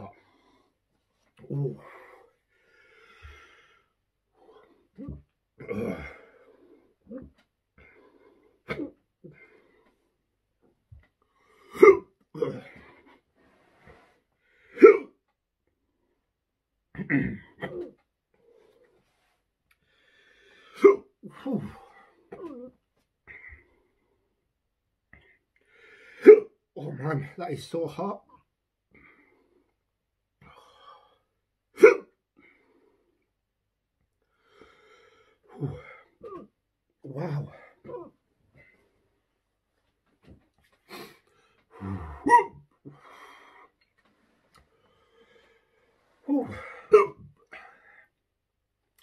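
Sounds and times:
short breaths and throat noises: 0:00.0 - 0:15.2, 0:34.2 - 0:48.4
man speaking: 0:01.4 - 0:01.9, 0:26.8 - 0:28.2, 0:37.0 - 0:37.6
man hiccuping: 0:11.7 - 0:12.7, 0:14.8 - 0:15.1, 0:17.0 - 0:18.0, 0:20.8 - 0:22.7, 0:26.2 - 0:26.5, 0:31.8 - 0:32.1, 0:41.8 - 0:42.6, 0:46.4 - 0:47.3.

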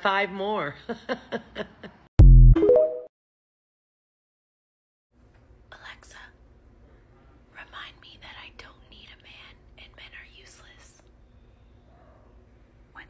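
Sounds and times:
faint low room hum: 0:05.2 - 0:13.0
woman whispering: 0:05.7 - 0:06.4, 0:07.5 - 0:11.1.

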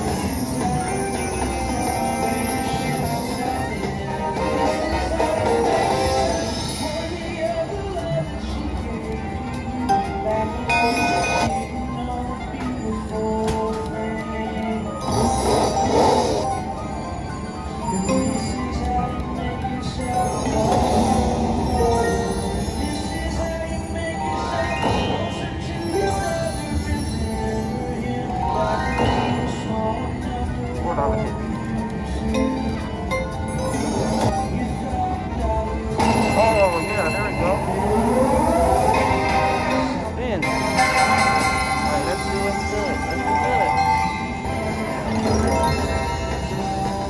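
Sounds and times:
slot machine electronic tune: 0:09.8 - 0:11.9, 0:20.0 - 0:31.3, 0:32.2 - 0:47.0
cluster of chiming tones: 0:10.6 - 0:11.8, 0:15.0 - 0:18.9, 0:19.9 - 0:30.0, 0:32.4 - 0:34.7, 0:35.5 - 0:47.0
background voices: 0:34.0 - 0:47.0
slot machine reels spinning: 0:36.1 - 0:46.7.

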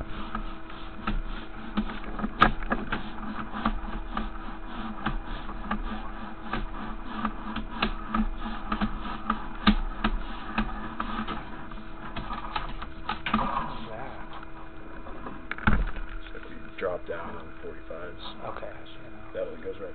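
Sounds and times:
steady hum: 0:00.0 - 0:19.9.

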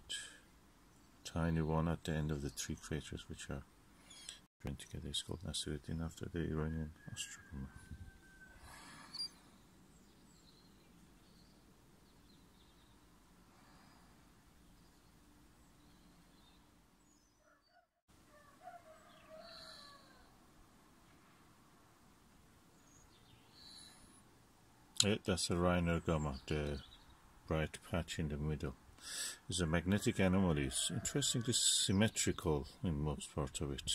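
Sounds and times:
faint chirps: 0:07.0 - 0:16.7, 0:22.7 - 0:24.3.

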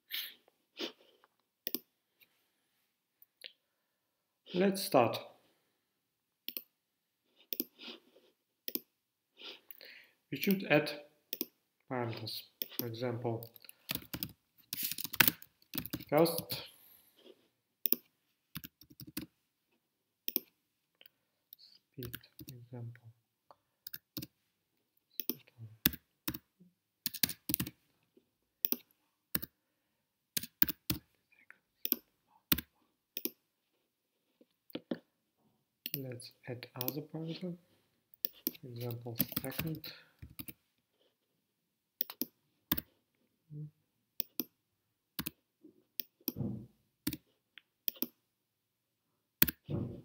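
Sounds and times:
keyboard and mouse clicks: 0:01.6 - 0:01.9, 0:06.5 - 0:06.7, 0:07.5 - 0:07.8, 0:08.7 - 0:08.9, 0:11.3 - 0:11.6, 0:12.6 - 0:16.6, 0:17.8 - 0:19.3, 0:20.3 - 0:20.6, 0:23.8 - 0:24.3, 0:27.0 - 0:27.7, 0:28.6 - 0:29.5, 0:30.4 - 0:31.0, 0:31.8 - 0:33.4, 0:38.2 - 0:40.6, 0:42.0 - 0:42.9, 0:44.2 - 0:44.5, 0:45.2 - 0:45.4, 0:46.0 - 0:48.2, 0:49.4 - 0:49.9
typing on computer keyboard: 0:13.8 - 0:16.5, 0:17.9 - 0:19.3, 0:23.9 - 0:24.3, 0:27.0 - 0:27.7, 0:30.4 - 0:31.0, 0:39.2 - 0:40.6, 0:47.9 - 0:48.1.

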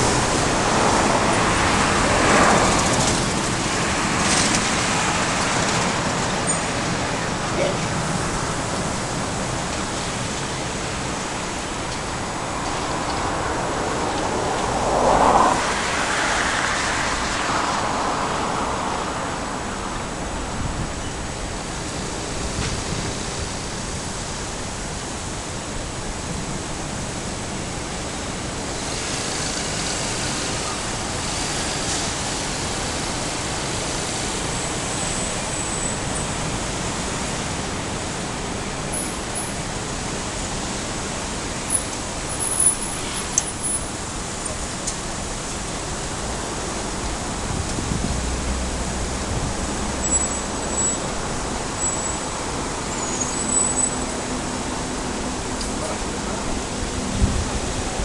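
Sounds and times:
road traffic noise: 0:00.0 - 0:58.0
vehicle passing: 0:12.3 - 0:19.4.

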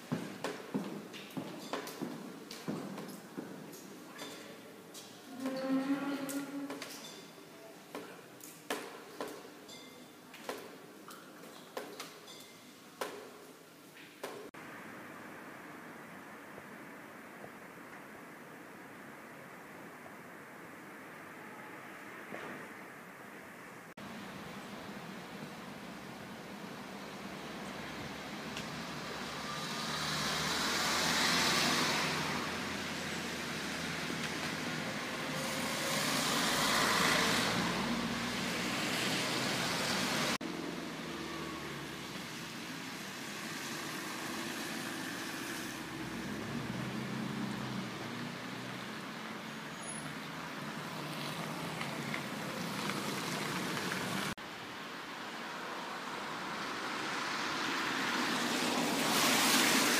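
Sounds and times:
cars passing by: 0:24.0 - 0:59.9.

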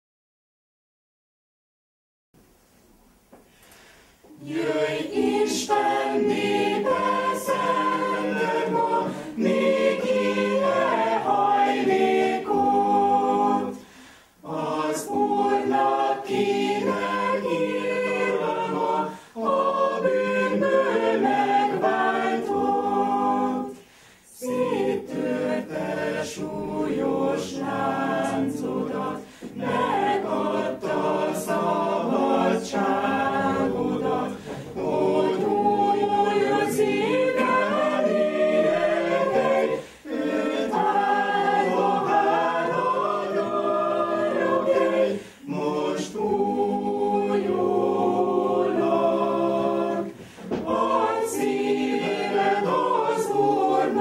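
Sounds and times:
choir singing: 0:04.3 - 0:54.0.

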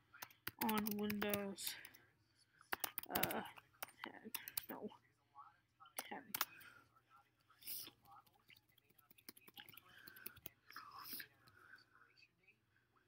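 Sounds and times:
keyboard clicks: 0:00.2 - 0:02.0, 0:02.7 - 0:04.8, 0:06.0 - 0:06.6, 0:08.0 - 0:10.6
man whispering: 0:01.6 - 0:13.0.

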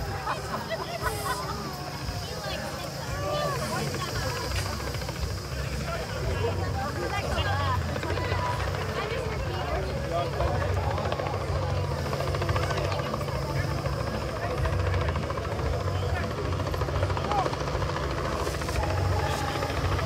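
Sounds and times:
helicopter rotor: 0:00.0 - 0:20.0
people talking: 0:00.0 - 0:20.0.

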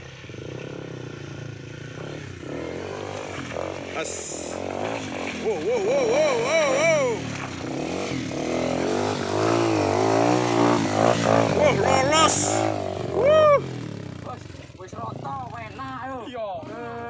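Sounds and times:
dirt bike engine at low revs: 0:00.0 - 0:17.0
loud shout: 0:05.4 - 0:07.2, 0:11.6 - 0:13.8
people yelling whoa: 0:05.5 - 0:07.2, 0:11.6 - 0:13.8.

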